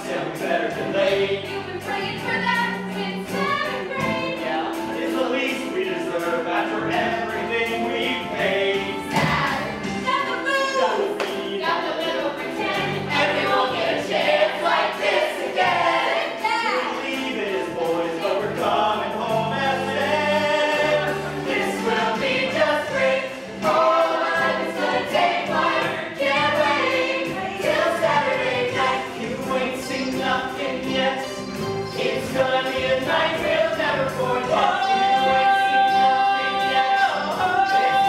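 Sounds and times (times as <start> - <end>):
ensemble singing in chorus: 0.0 - 10.0, 11.0 - 38.0.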